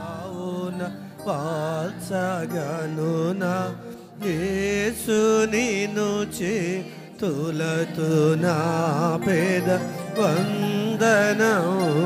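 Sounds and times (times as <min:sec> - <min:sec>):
mixed choir singing: 0:00.0 - 0:04.9.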